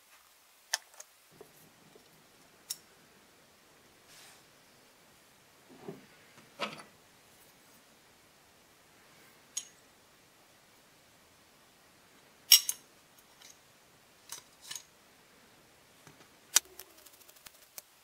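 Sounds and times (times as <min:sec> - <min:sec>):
metal gun parts clinking: 0:12.5 - 0:12.8.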